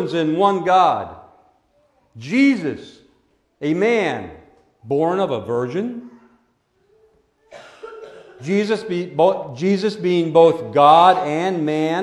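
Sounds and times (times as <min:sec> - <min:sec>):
person coughing: 0:07.5 - 0:08.6
person speaking: 0:08.4 - 0:12.0.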